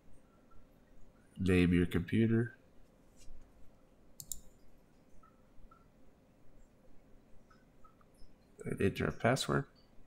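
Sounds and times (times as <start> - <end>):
sharp keyboard clicks: 4.2 - 4.5.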